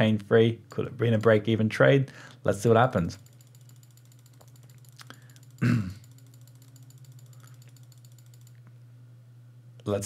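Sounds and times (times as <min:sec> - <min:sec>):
low hum with flutter: 0:02.7 - 0:09.8.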